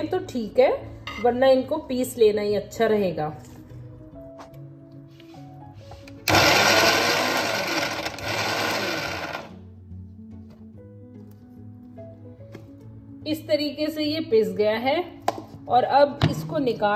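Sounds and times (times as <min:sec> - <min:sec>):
background music: 0:00.0 - 0:16.9
mixer grinder grinding: 0:06.2 - 0:09.5.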